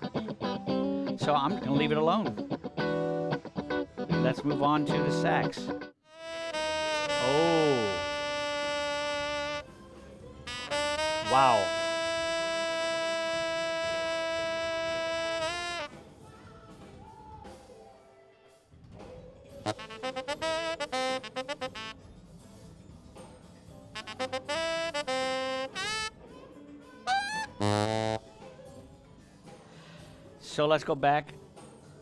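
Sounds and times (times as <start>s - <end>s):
shrill saxophone notes: 6.1s - 9.6s, 10.5s - 15.9s, 19.7s - 22.0s, 24.0s - 26.1s, 27.1s - 28.3s.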